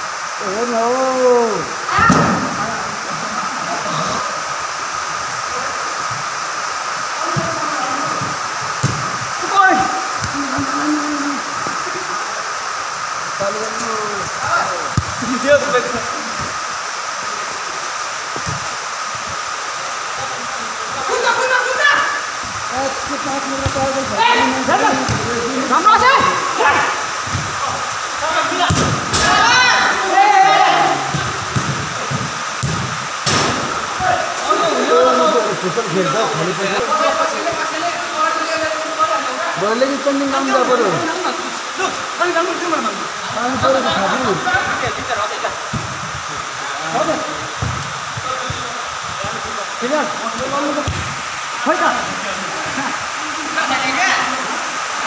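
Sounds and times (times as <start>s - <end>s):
steady background hiss: 0.0s - 55.0s
players shouting: 20.7s - 32.8s, 33.4s - 35.9s
sharp knocks: 31.1s - 33.8s.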